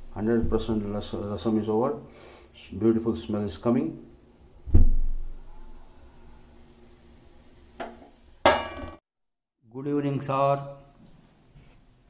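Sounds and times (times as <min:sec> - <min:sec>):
metal kitchenware knocking: 0:07.8 - 0:09.0.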